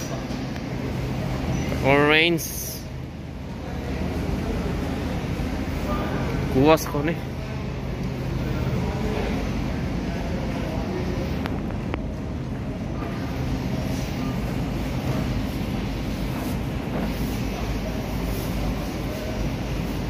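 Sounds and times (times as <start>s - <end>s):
supermarket rumble and hum: 0.0s - 20.0s.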